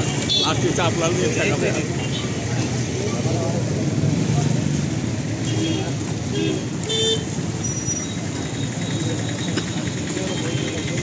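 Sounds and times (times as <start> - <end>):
traffic rumble: 0.0 - 11.0.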